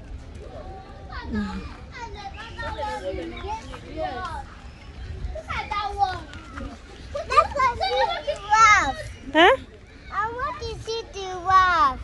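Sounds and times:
young children calling and chattering: 0.0 - 12.0.

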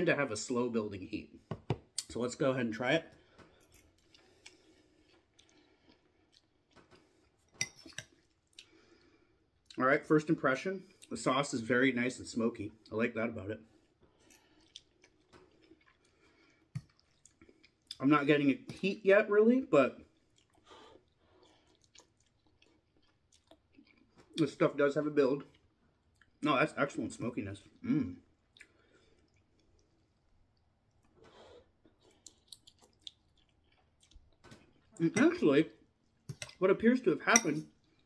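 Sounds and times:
noodles slurped and chewed: 20.0 - 24.2, 28.5 - 34.9.

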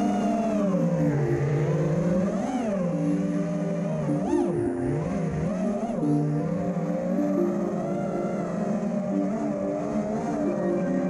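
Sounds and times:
drone motors whining: 0.0 - 11.0.

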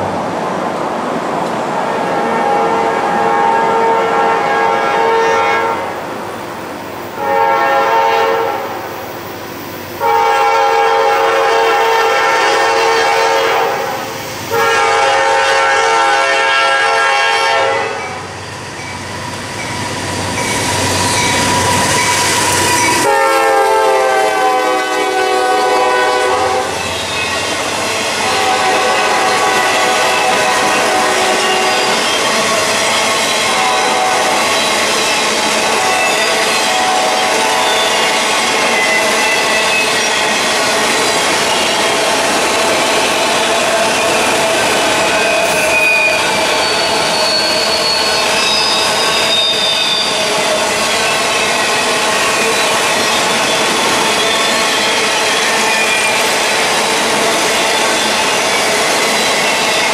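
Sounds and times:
rumble of passing freight cars: 0.0 - 59.9
locomotive air horn blasts: 2.1 - 6.0, 7.2 - 8.8, 10.0 - 18.1, 23.0 - 26.8, 28.2 - 32.0, 33.5 - 34.4.

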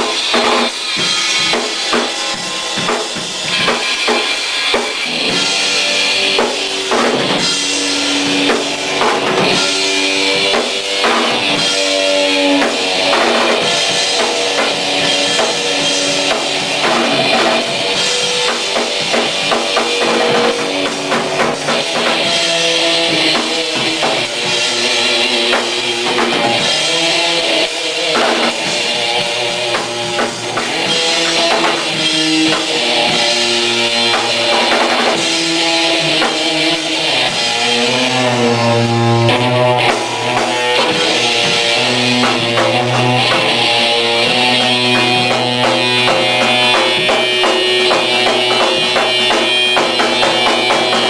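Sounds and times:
drum kit: 0.0 - 51.0
electric guitar chords: 0.0 - 51.0
live rock band playing: 0.0 - 51.0.

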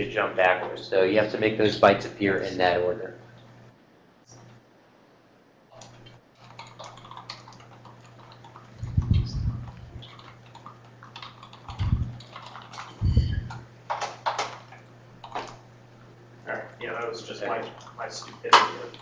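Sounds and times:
steady low hum: 0.0 - 19.0
keyboard typing: 5.7 - 15.6, 17.6 - 19.0
heavy low thumps: 8.8 - 10.0, 13.0 - 13.6.

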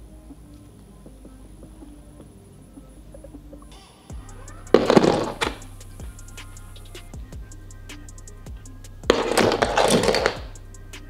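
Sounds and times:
music with ticking beat: 0.0 - 11.0.

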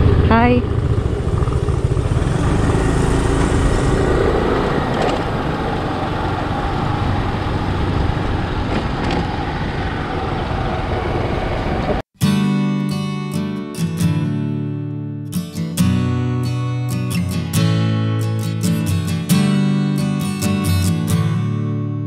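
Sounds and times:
motor scooter engine running: 0.0 - 12.0
wind and road noise: 0.0 - 12.0.

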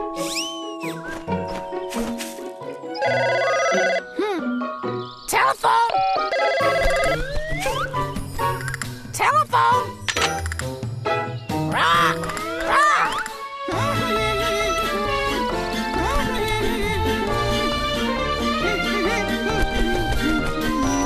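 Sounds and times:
cheerful children's music: 0.0 - 21.0
cartoon telephone bell ringing: 3.0 - 4.1, 6.0 - 7.2.

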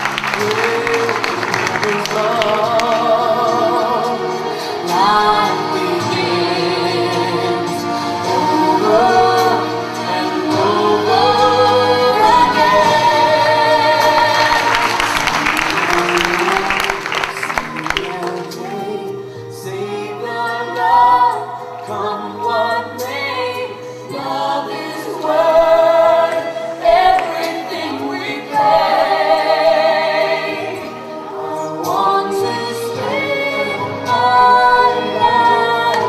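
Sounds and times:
audience applause: 0.0 - 3.3, 12.4 - 18.8
backing music: 0.0 - 36.0
pop ballad singing: 0.2 - 36.0.

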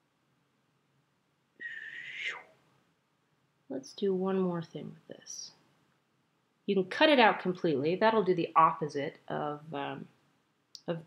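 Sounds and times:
person whistling downward glide: 1.6 - 2.5.

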